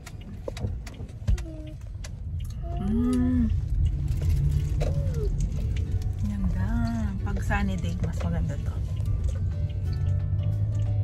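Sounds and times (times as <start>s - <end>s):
car cabin rumble: 0.0s - 11.0s.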